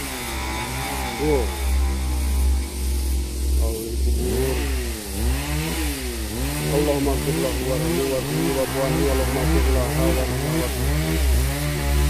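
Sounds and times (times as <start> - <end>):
chainsaw engine revving: 0.0 - 12.0.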